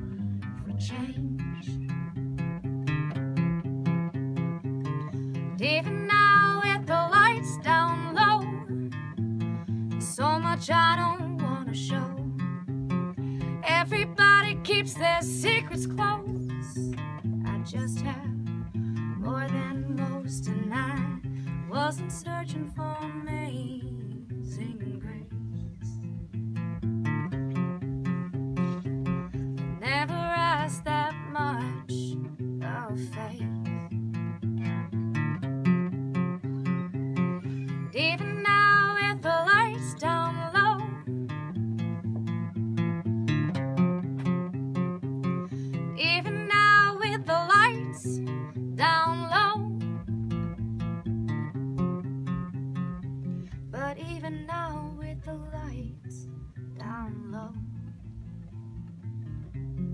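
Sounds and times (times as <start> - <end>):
woman singing: 0.0 - 1.9, 5.5 - 9.1, 10.0 - 12.5, 13.6 - 18.5, 19.2 - 26.1, 29.8 - 34.0, 37.8 - 41.1, 45.9 - 49.8, 53.7 - 57.8
acoustic guitar picked and strummed: 0.0 - 59.9.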